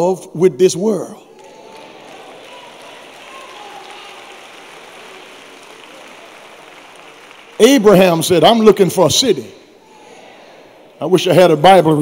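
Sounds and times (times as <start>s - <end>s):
room noise hiss: 1.2s - 11.1s.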